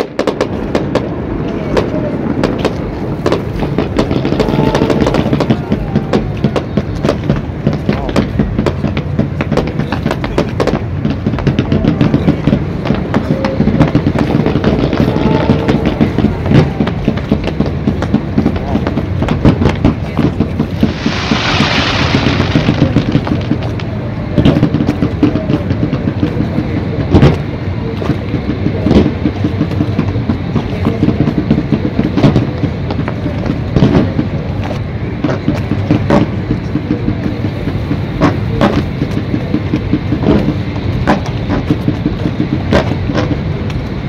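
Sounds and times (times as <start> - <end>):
fireworks bangs: 0.0 - 44.0
low rumble: 0.1 - 25.3
rushing hiss: 20.5 - 24.1.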